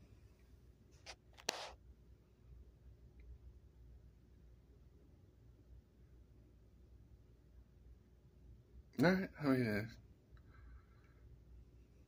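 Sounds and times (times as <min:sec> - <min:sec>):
low background noise: 0:00.0 - 0:12.0
faint brushing: 0:00.9 - 0:01.8
short scrape: 0:01.0 - 0:01.8.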